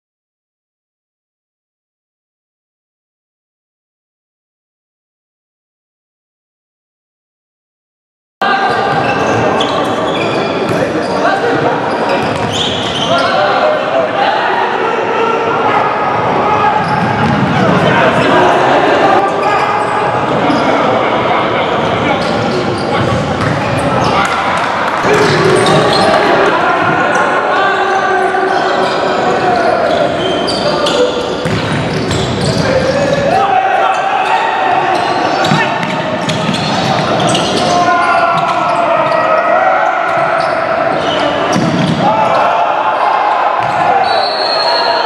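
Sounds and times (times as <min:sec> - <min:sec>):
players shouting: 0:08.4 - 0:45.0.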